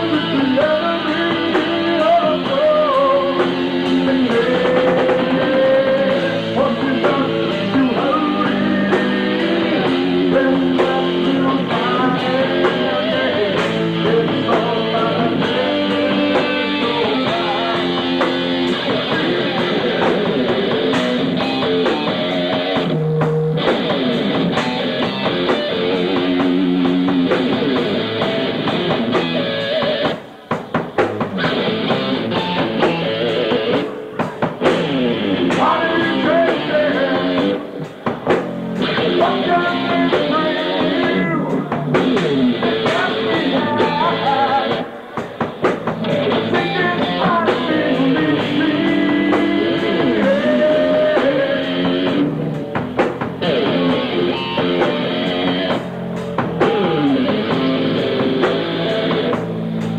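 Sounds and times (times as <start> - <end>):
drum kit: 0.0 - 59.9
electric guitar: 0.0 - 59.9.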